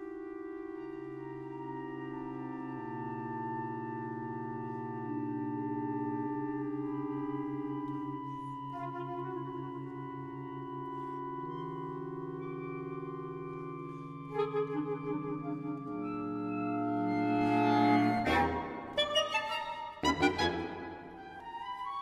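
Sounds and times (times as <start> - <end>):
ensemble music with held notes: 0.0 - 22.0.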